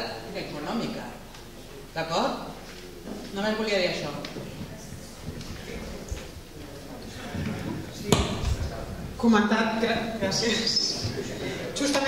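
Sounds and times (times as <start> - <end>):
microphone handling rumble: 4.4 - 11.4
knock on microphone: 7.4 - 9.2.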